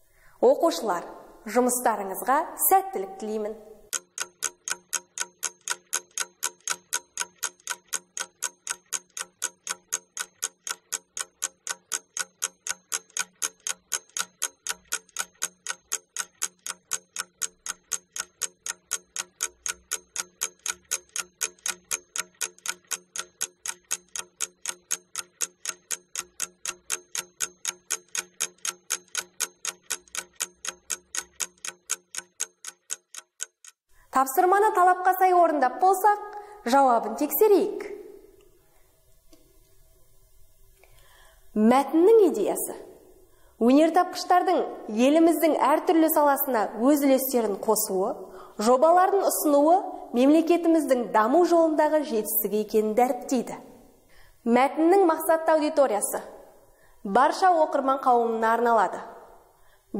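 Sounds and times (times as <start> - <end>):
clock ticking: 3.8 - 34.7.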